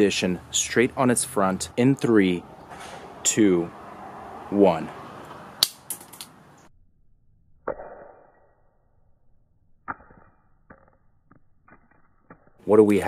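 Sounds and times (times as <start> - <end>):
watch hitting concrete: 5.6 - 6.4.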